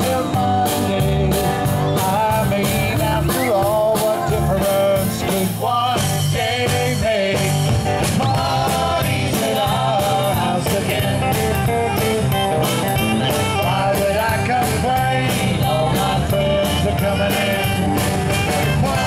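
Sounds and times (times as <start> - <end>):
acoustic guitars: 0.0 - 19.0
drum kit: 0.0 - 19.0
saxophone: 11.6 - 14.5, 16.3 - 19.0.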